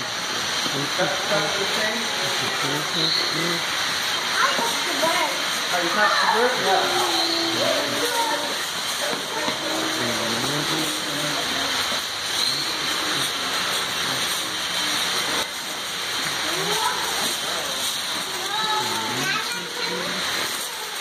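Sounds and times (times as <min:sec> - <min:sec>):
waterfall rushing and splashing: 0:00.0 - 0:21.0
people talking: 0:00.6 - 0:03.7, 0:04.3 - 0:21.0.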